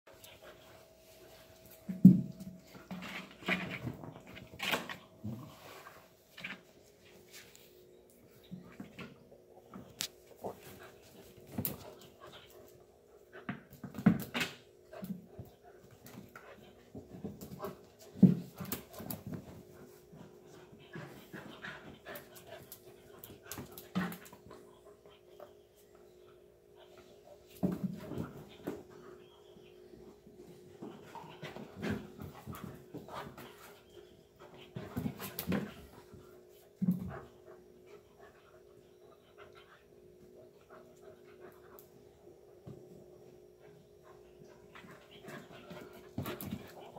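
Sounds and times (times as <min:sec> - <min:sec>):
puppies playing rough: 0:30.2 - 0:46.9.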